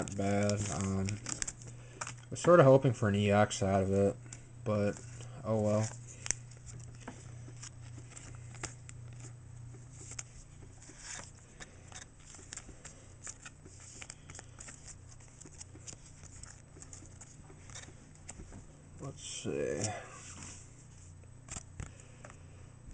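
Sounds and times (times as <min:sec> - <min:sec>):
cards and plastic rustling: 0:00.0 - 0:22.5
low steady hum: 0:00.0 - 0:22.9.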